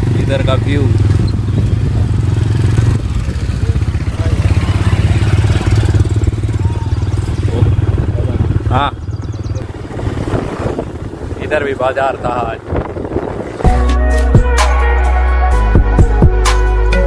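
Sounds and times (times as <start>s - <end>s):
motorcycles passing by: 0.0s - 13.8s
motorcycle engine running: 0.0s - 14.6s.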